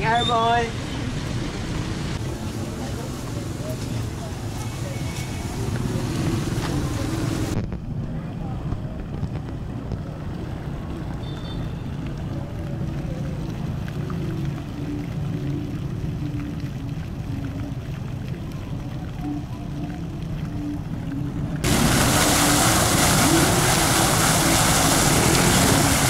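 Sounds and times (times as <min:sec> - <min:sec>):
traffic rumble: 0:00.0 - 0:26.0
faint music: 0:02.2 - 0:21.7.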